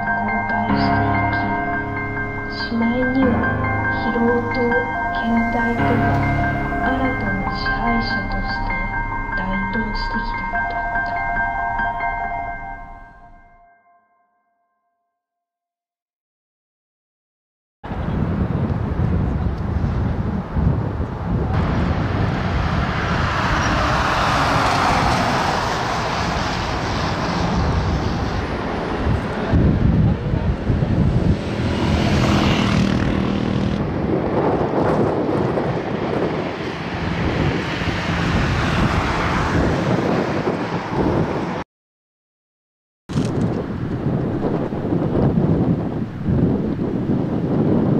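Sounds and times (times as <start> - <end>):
steady traffic: 0.0 - 13.6, 17.9 - 41.6, 43.1 - 47.9
voices: 2.6 - 11.2
wind buffeting microphone: 17.9 - 41.6, 43.1 - 47.9.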